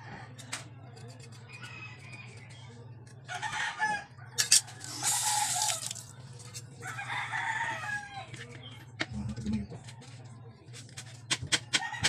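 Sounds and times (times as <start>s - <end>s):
rooster crowing: 3.4s - 6.0s, 6.8s - 8.3s.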